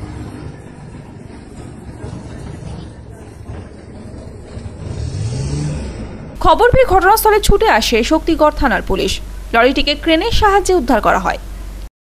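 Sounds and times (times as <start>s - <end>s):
vehicle engine revving: 4.4s - 6.4s.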